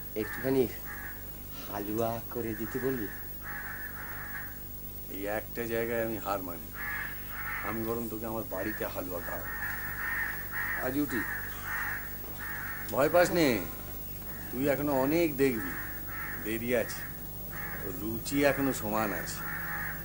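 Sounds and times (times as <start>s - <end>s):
crows cawing: 0.0s - 4.8s, 6.3s - 20.0s.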